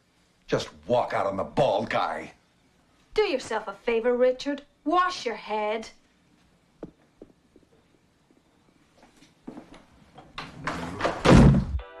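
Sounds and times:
door slamming shut: 0:10.6 - 0:11.8.

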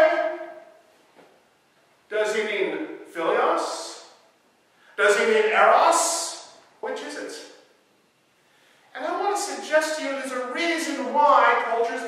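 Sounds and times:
man's voice: 0:00.0 - 0:00.6, 0:02.1 - 0:04.1, 0:05.0 - 0:07.6, 0:09.0 - 0:12.0.

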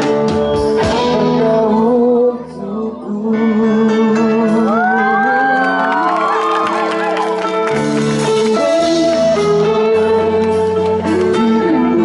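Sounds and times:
live pop band playing: 0:00.0 - 0:12.0
audience whooping and cheering: 0:04.7 - 0:08.8.

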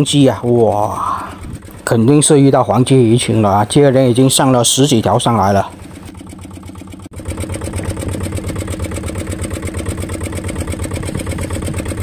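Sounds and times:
boat engine pulsing: 0:00.0 - 0:12.0.

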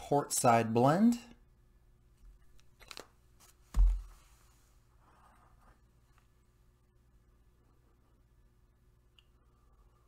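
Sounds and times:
bag thumping on table: 0:03.7 - 0:04.2.

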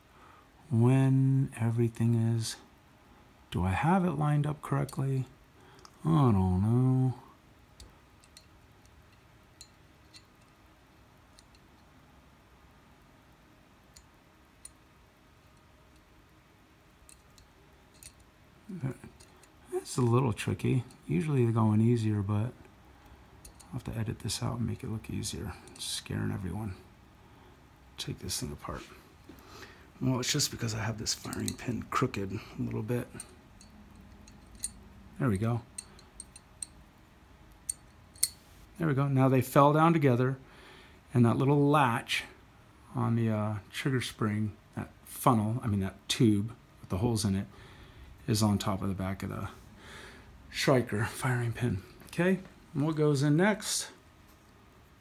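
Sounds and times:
faint small metal clicks: 0:07.8 - 0:10.6, 0:11.3 - 0:11.9, 0:17.0 - 0:18.4, 0:22.6 - 0:23.8, 0:33.1 - 0:34.8, 0:35.8 - 0:36.8, 0:37.5 - 0:38.5.

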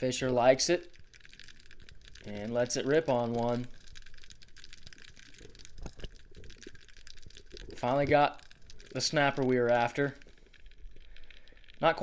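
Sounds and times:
underwater crackle of clicks: 0:00.0 - 0:12.0
louder ticks: 0:00.2 - 0:12.0.

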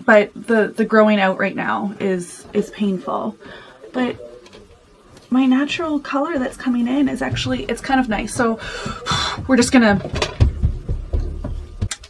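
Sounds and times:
toddler footsteps thumping above: 0:06.3 - 0:12.0.

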